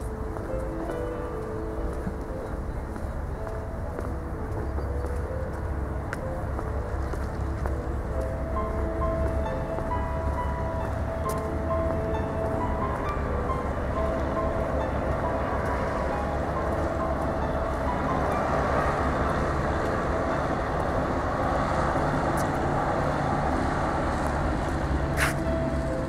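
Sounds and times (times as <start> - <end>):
faint music: 0.0 - 26.0
low rumble of distant traffic: 0.0 - 26.0.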